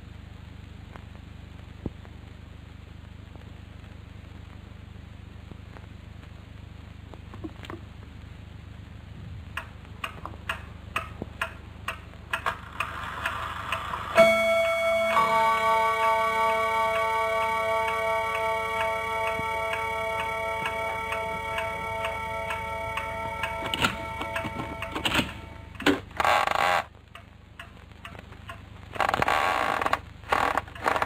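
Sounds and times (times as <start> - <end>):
cartoon clock ticking: 9.6 - 25.9, 27.1 - 28.6
high ringing chord: 14.1 - 25.8.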